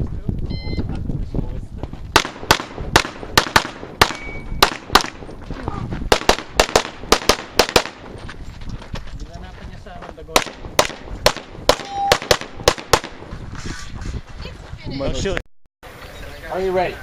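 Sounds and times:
handgun shots: 0:02.2 - 0:05.2, 0:06.1 - 0:08.1, 0:10.4 - 0:13.2.

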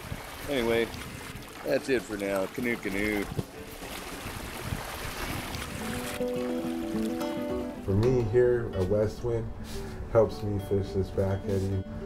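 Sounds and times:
rushing wind: 0:00.0 - 0:01.6, 0:03.1 - 0:06.2
rushing water: 0:00.0 - 0:07.9
music with long held notes: 0:06.1 - 0:12.0.

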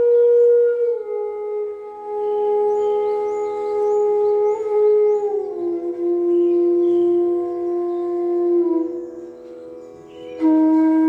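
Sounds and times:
bamboo flute sustained notes: 0:00.0 - 0:11.0.

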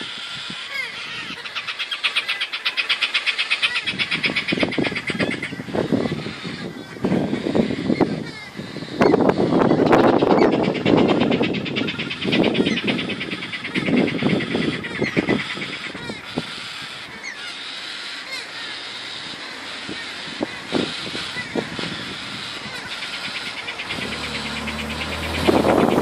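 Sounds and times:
bird chirps: 0:09.8 - 0:26.0
bird rattling trill: 0:20.8 - 0:26.0
passing vehicle: 0:21.7 - 0:26.0.

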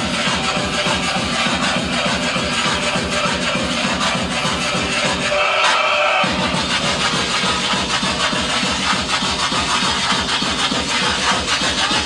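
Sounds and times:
rapid pounding kick drum: 0:00.0 - 0:05.4, 0:06.2 - 0:12.0
fast electronic dance music: 0:00.0 - 0:12.0.

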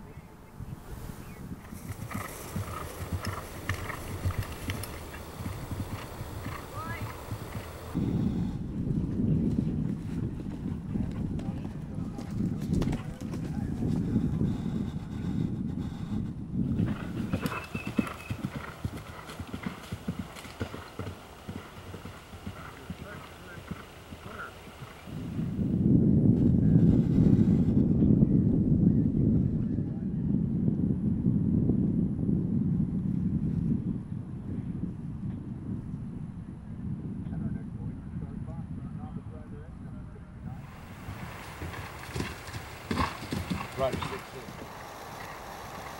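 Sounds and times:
horse galloping on grass: 0:01.5 - 0:25.7, 0:40.6 - 0:45.9.

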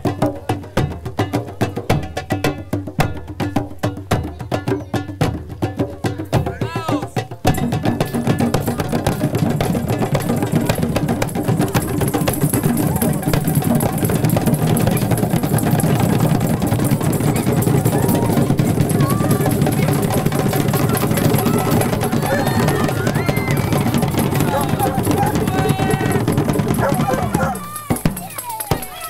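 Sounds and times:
djembe hand drums: 0:00.0 - 0:29.0
drum beaten with sticks: 0:00.0 - 0:29.0
faint voices: 0:08.2 - 0:29.0.

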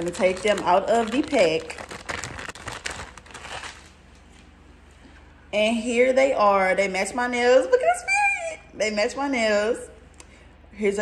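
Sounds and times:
plastic bag crinkling: 0:00.0 - 0:04.4.

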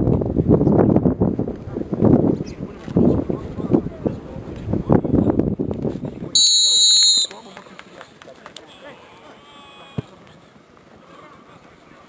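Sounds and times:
referee whistle blast: 0:06.4 - 0:07.4.

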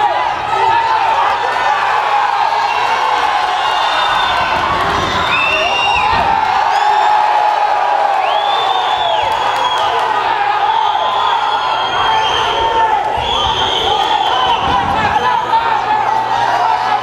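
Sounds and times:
crowd shouting and cheering: 0:00.0 - 0:17.0.

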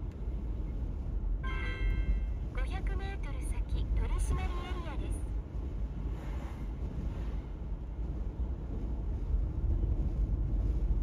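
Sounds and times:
car road and engine rumble: 0:00.0 - 0:11.0.

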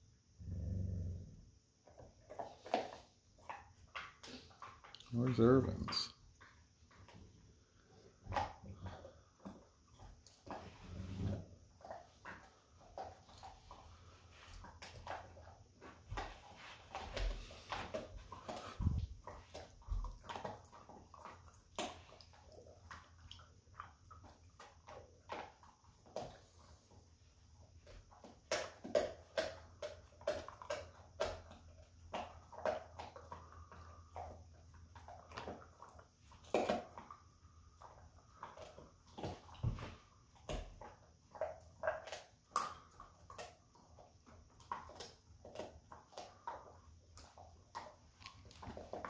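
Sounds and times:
dog growling: 0:00.4 - 0:01.4, 0:10.5 - 0:12.0
dogs gnawing chew sticks: 0:01.8 - 0:49.0.

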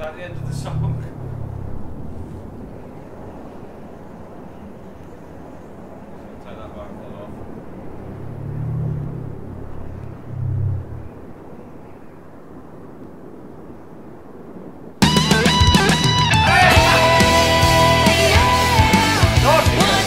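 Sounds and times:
distorted electric guitar: 0:15.0 - 0:20.0
drums: 0:15.0 - 0:20.0
rock band playing: 0:15.0 - 0:20.0.

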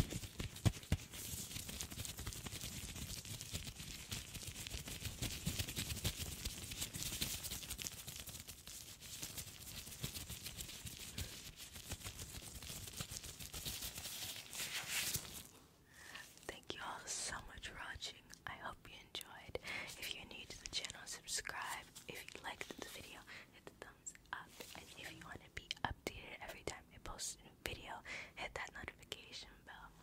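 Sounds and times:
woman whispering: 0:16.0 - 0:30.0.

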